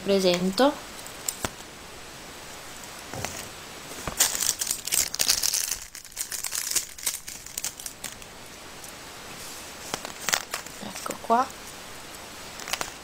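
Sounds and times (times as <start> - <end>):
crinkling rustle of coin purse: 2.8 - 11.8, 12.5 - 13.0.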